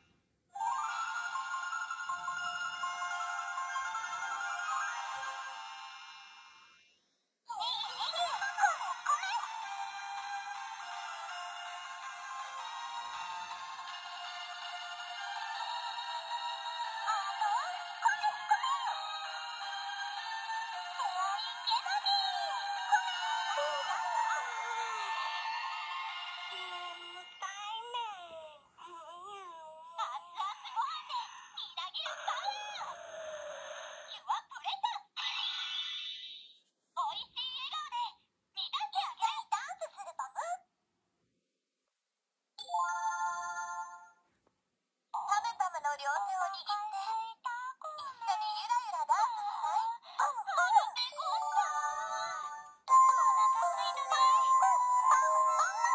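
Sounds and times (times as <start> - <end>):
toy speaker electronic jingle: 7.6 - 9.5, 11.8 - 27.8, 30.3 - 34.3, 51.1 - 55.9
high cartoon voice singing: 20.8 - 25.3, 26.4 - 33.2, 45.8 - 55.9.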